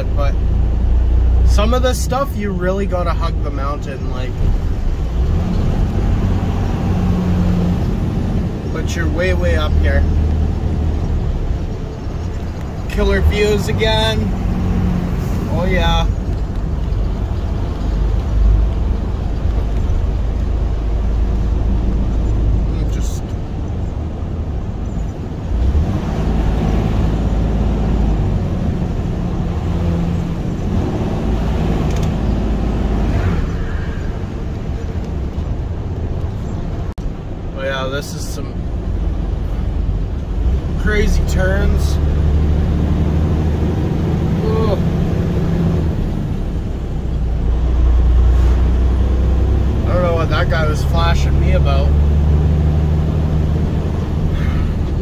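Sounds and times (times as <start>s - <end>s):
road noise: 0.0s - 55.0s
truck diesel engine drone: 0.0s - 55.0s.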